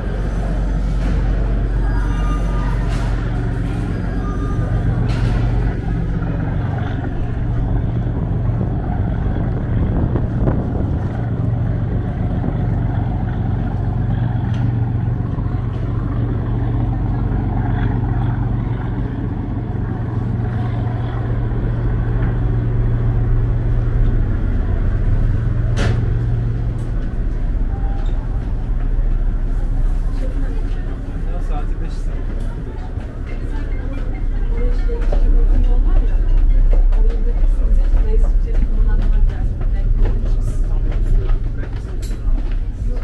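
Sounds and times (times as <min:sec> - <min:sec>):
diesel engines droning: 0:00.0 - 0:43.0.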